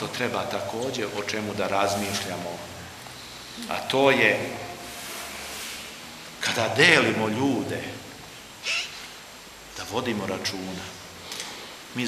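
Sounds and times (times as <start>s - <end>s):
man speaking: 0.0s - 3.0s, 3.6s - 4.8s, 6.4s - 8.2s, 9.8s - 11.0s.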